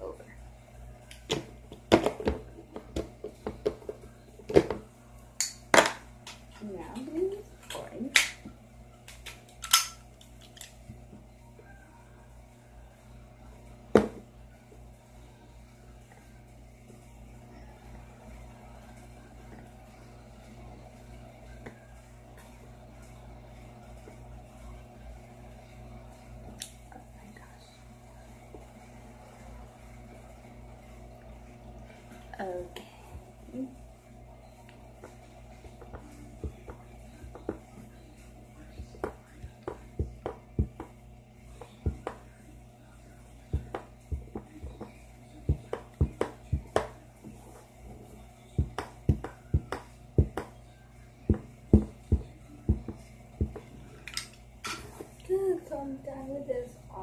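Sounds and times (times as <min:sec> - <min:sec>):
faint steady hum: 0:00.0 - 0:57.0.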